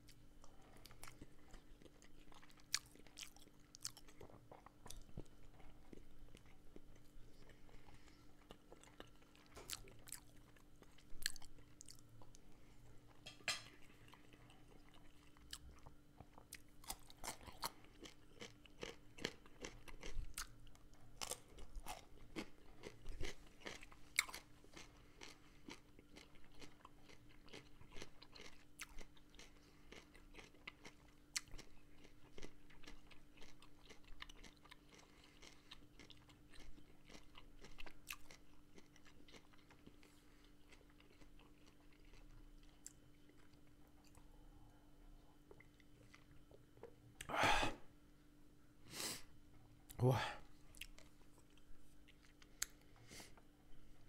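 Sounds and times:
person chewing food: 0:00.0 - 0:47.8, 0:50.5 - 0:54.0.

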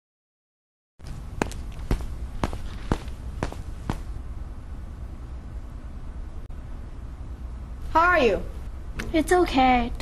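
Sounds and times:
footsteps: 0:01.0 - 0:04.1
steady low hum: 0:01.0 - 0:10.0.

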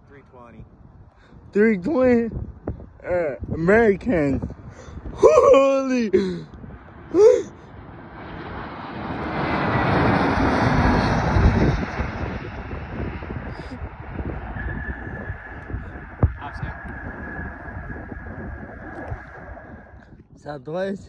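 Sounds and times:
jet engine rush: 0:00.0 - 0:21.0
thin steady whine: 0:12.5 - 0:20.7.

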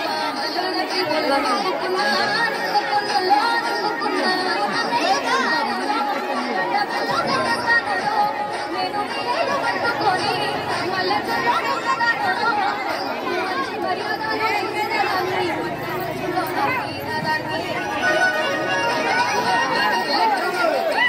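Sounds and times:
children chattering: 0:00.0 - 0:21.0.

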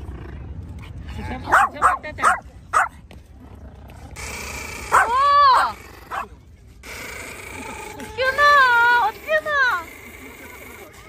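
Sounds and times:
dog yipping: 0:01.5 - 0:03.0, 0:04.9 - 0:06.3.

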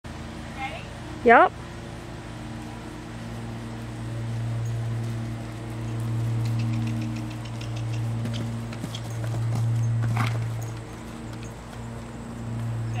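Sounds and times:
low hum: 0:00.1 - 0:13.0
horse hoofbeats on turf: 0:02.5 - 0:13.0.

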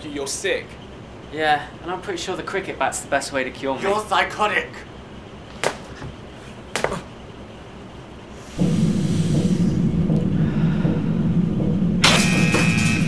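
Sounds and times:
dark low droning film score: 0:08.4 - 0:13.0
harsh high held tone: 0:08.6 - 0:13.0.

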